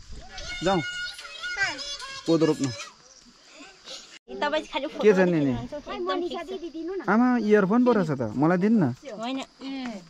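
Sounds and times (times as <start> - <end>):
child's voice: 0.2 - 3.0, 3.6 - 7.1.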